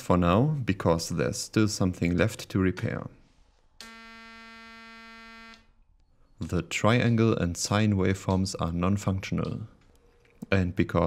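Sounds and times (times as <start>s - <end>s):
buzzy synthesizer oscillator tone: 3.8s - 5.7s.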